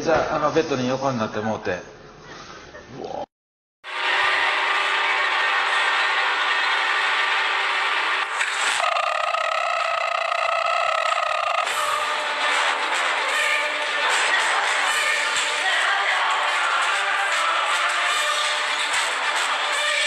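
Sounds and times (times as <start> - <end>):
harsh steady noise: 3.8 - 20.0
shrill held pitched sound: 8.6 - 20.0.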